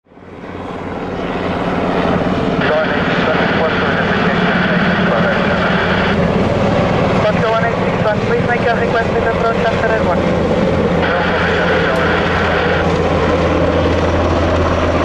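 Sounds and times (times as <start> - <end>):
helicopter rotor beating: 0.0 - 15.0
helicopter turbine noise: 0.0 - 15.0
voice over radio: 2.6 - 6.3, 7.1 - 13.2.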